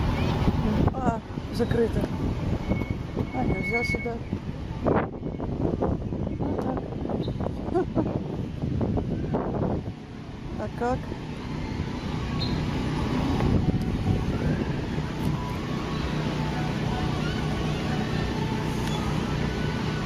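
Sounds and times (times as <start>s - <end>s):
low rumble of riding: 0.0s - 20.0s.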